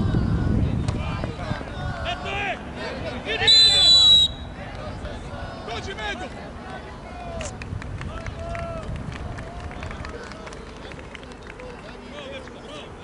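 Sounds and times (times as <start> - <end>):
distant shouts: 0.0 - 7.5
steady low rumble: 0.0 - 10.2.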